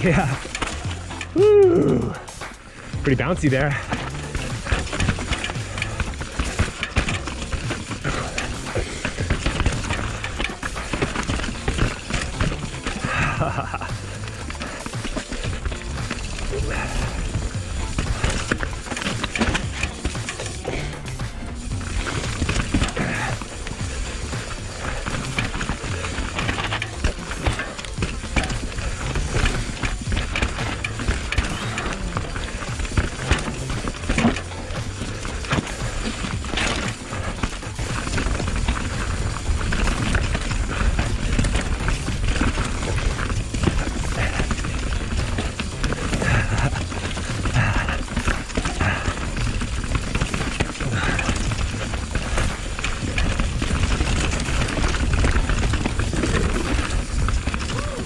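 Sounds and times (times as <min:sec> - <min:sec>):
bike rattles and knocks: 0:00.0 - 0:58.0
tyres rolling over dirt and rocks: 0:00.0 - 0:58.0.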